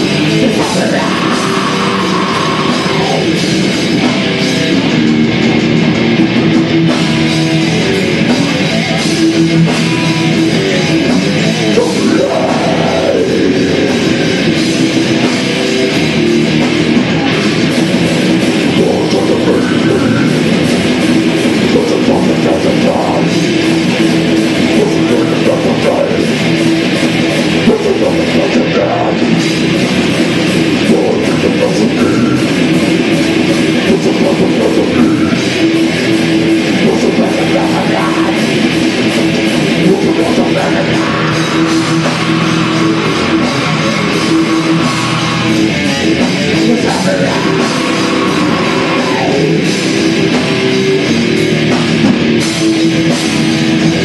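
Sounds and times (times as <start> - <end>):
distorted electric guitar: 0.0 - 54.0
drum kit: 0.0 - 54.0
electric bass: 0.0 - 54.0.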